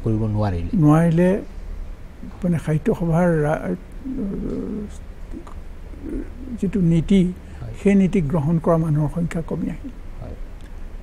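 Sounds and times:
faint studio hum: 0.0s - 11.0s
man's creaky hesitation sound: 3.6s - 6.8s.

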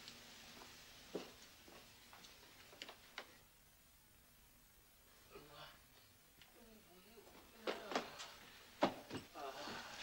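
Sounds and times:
faint sharp clicks and taps: 0.0s - 3.4s.

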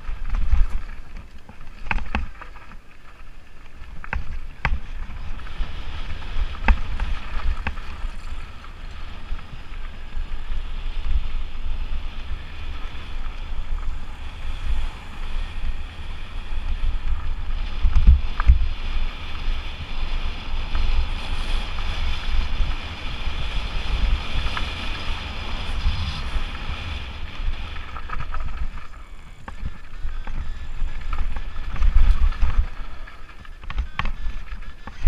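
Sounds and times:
tyres crunching on stones: 0.0s - 10.2s, 25.9s - 35.0s
bike jolts: 0.0s - 35.0s
wind buffeting microphone: 0.0s - 35.0s.

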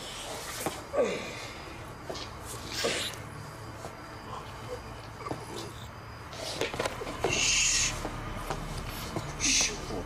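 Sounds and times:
muffled hissing breath: 0.0s - 10.0s.

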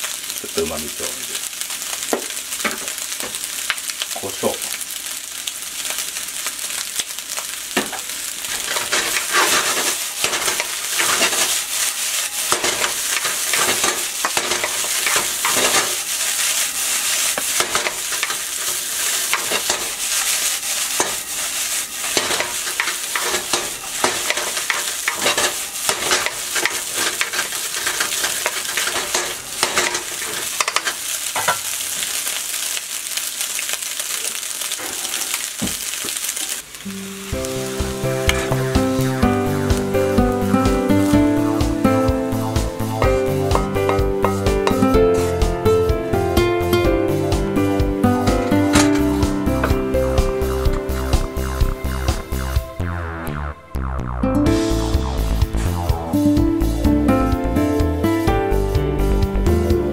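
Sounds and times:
rice sizzling in a wok: 0.0s - 52.6s, 54.5s - 59.9s
spatula scraping a pan: 8.4s - 31.7s.

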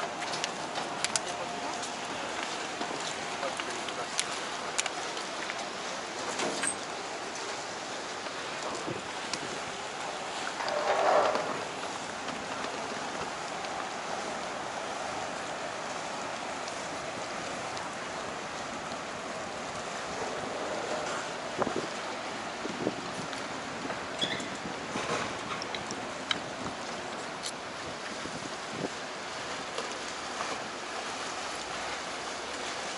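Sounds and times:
motorboat traffic: 0.0s - 32.9s
water lapping: 0.0s - 32.9s
wind on microphone: 19.6s - 27.1s, 27.8s - 29.0s.

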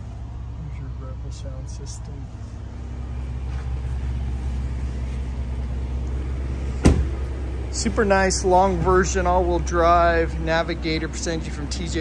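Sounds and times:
car engine idling: 0.0s - 12.0s
sharp thump: 6.8s - 7.2s.

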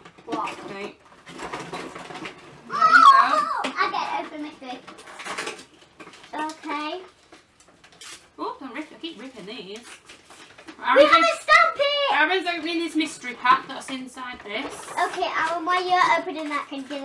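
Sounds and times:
plastic toys clattering: 0.0s - 17.0s
children talking and exclaiming: 2.6s - 4.8s, 10.8s - 12.5s, 14.9s - 17.0s.

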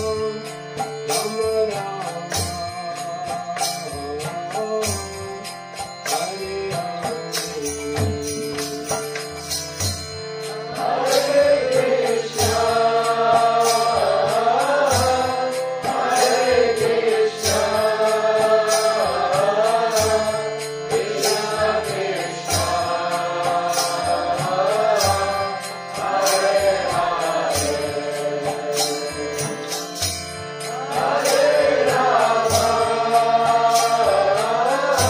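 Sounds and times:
voices chanting: 10.6s - 29.4s, 30.7s - 35.0s.

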